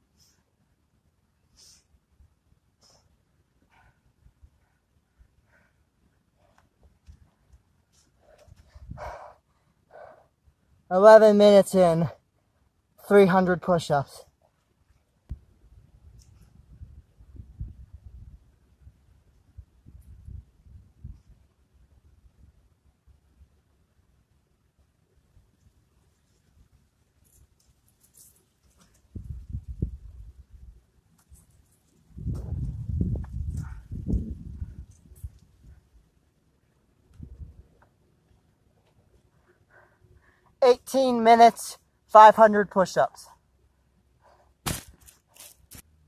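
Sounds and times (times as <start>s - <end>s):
body thumping on wooden plank: 44.6s - 45.1s.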